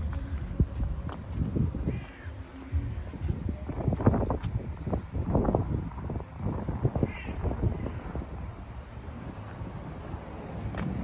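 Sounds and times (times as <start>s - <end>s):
bird calling: 7.0s - 8.0s.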